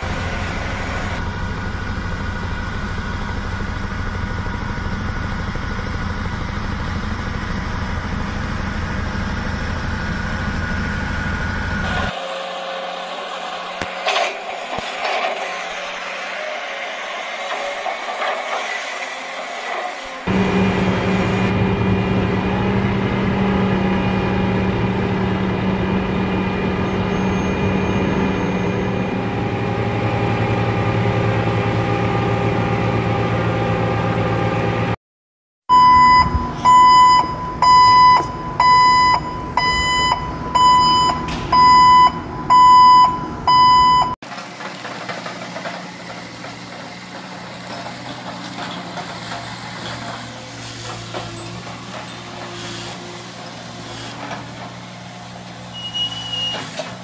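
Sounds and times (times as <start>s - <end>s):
heavy machine engine running: 0.0s - 35.0s, 35.7s - 57.0s
reversing alarm beeping: 35.7s - 44.2s.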